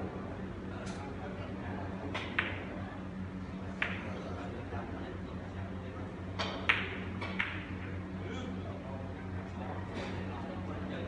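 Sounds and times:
cue striking billiard ball: 0:03.8 - 0:04.1.

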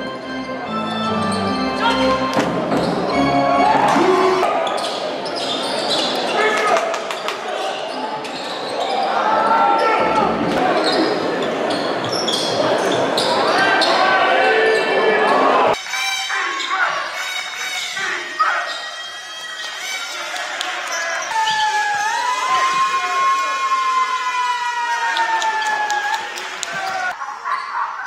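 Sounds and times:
crowd voices and shouts: 0:00.0 - 0:28.0.

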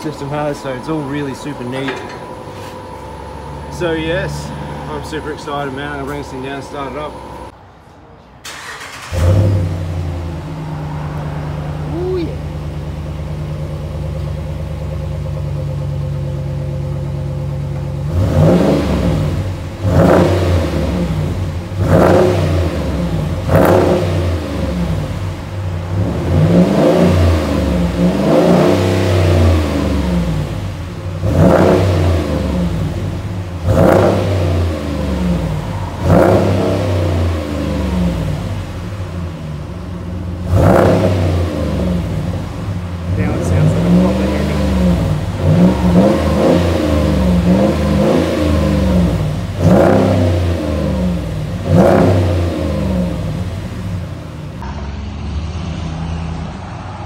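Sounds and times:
car engine revving: 0:00.0 - 0:07.7, 0:08.4 - 0:57.0
car engine idling: 0:00.0 - 0:57.0.

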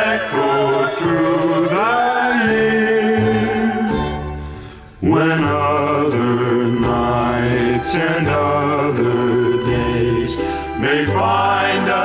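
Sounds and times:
close harmony vocal ballad: 0:00.0 - 0:12.0
soft instrumental backing: 0:00.0 - 0:12.0.

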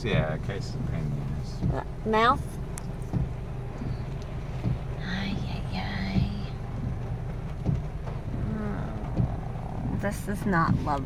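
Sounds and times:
car engine drone: 0:00.0 - 0:11.0
windshield wipers knocking: 0:00.0 - 0:11.0.

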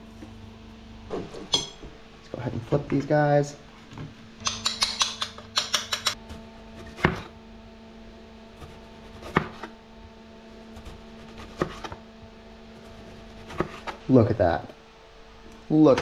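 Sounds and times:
steady low hum: 0:00.0 - 0:16.0
knife slicing a tomato: 0:08.6 - 0:09.7, 0:10.7 - 0:12.0, 0:12.8 - 0:14.0.

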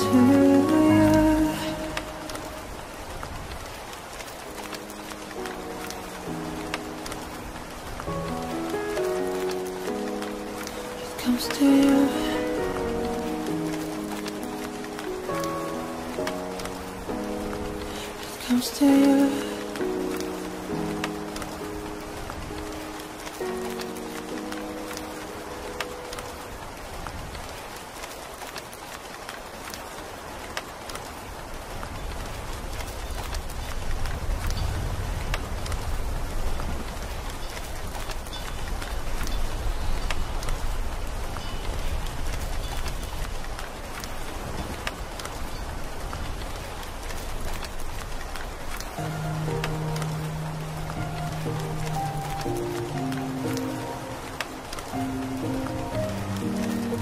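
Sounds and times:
soft keyboard chords: 0:00.0 - 0:03.3, 0:04.2 - 0:27.6, 0:48.8 - 0:57.0
steady rain: 0:00.0 - 0:57.0.

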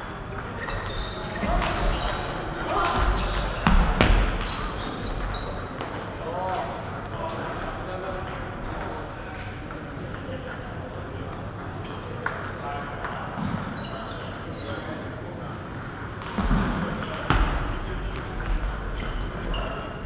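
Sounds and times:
voices talking: 0:00.0 - 0:16.2.

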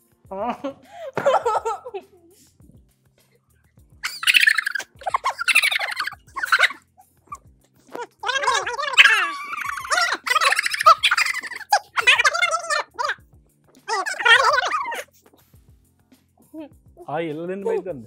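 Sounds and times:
high-pitched wordless vocal sounds: 0:04.0 - 0:15.4.

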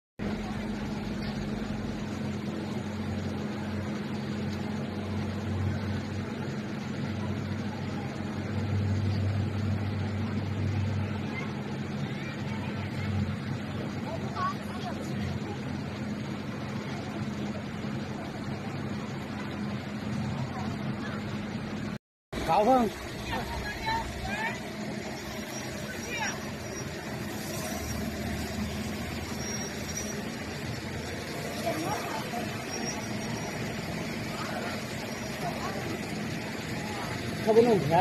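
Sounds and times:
low engine hum: 0:00.2 - 0:38.0.

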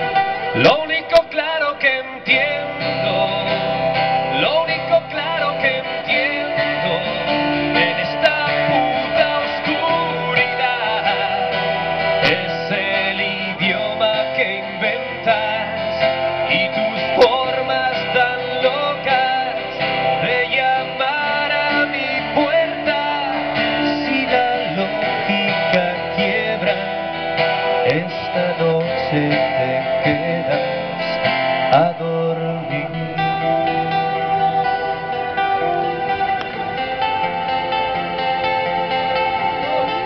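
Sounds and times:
live band music: 0:00.0 - 0:40.0
strummed acoustic guitar: 0:00.0 - 0:40.0.

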